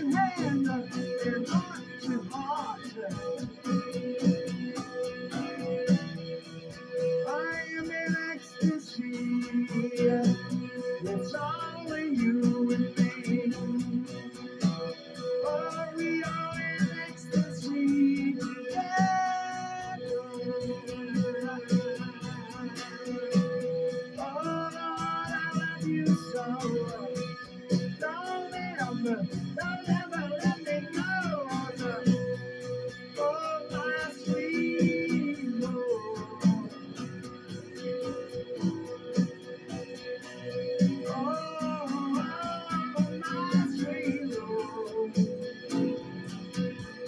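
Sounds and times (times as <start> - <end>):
man singing: 0.0 - 4.3, 7.0 - 38.6, 40.5 - 47.0
acoustic guitar strumming: 0.0 - 47.0.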